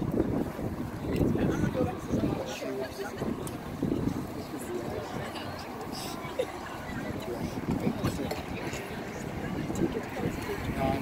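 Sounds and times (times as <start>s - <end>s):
indistinct chatter: 0.0s - 11.0s
wind noise on microphone: 0.0s - 11.0s.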